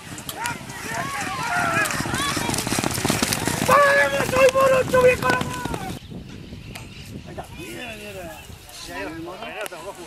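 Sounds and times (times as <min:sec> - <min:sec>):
horse hooves galloping on dirt: 0:00.0 - 0:06.0.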